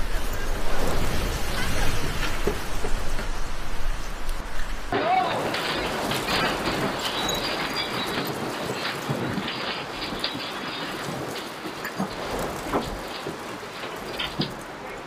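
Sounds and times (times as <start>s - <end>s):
shelving and stock rattling: 4.6s - 15.0s
goods falling to the floor: 4.9s - 15.0s.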